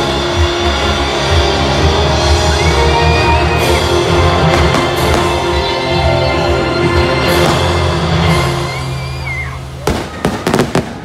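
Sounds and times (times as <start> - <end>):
show music: 0.0 - 11.0
firework bangs: 4.4 - 5.7, 9.8 - 11.0.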